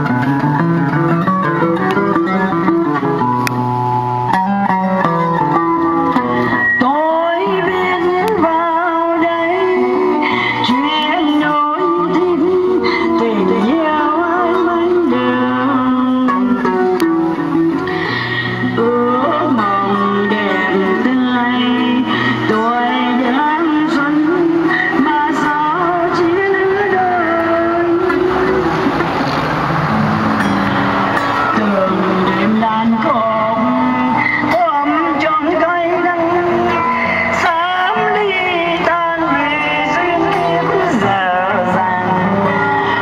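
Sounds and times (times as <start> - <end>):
acoustic guitar: 0.0 - 43.0
woman singing through amplifier: 4.0 - 29.7, 30.8 - 43.0.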